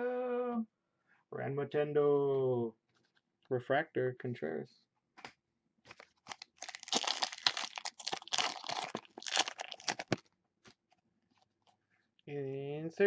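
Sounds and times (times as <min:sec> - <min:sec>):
foil wrapper tearing and crinkling: 0:06.2 - 0:10.3.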